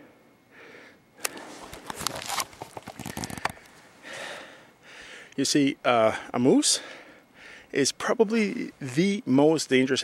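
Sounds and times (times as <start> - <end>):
faint breaths: 0.0 - 1.9, 3.0 - 5.4, 6.0 - 7.8
camera handling rustling: 1.2 - 3.9.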